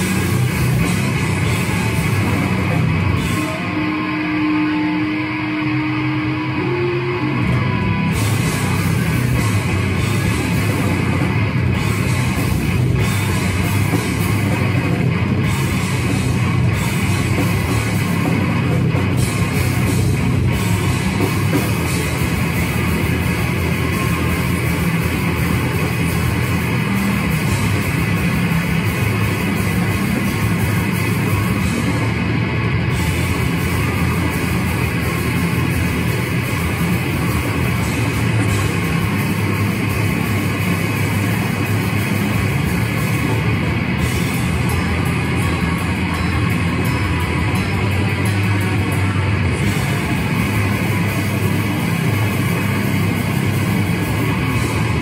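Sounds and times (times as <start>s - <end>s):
cymbals: 0.0s - 55.0s
heavy metal band playing: 0.0s - 55.0s.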